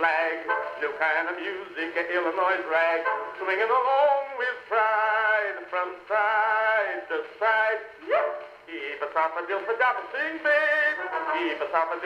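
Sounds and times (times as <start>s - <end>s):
man singing ragtime song: 0.0s - 12.0s.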